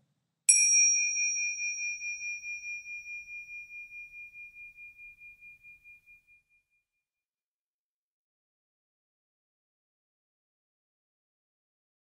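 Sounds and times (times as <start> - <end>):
meditation chime ringing: 0.5 - 6.3.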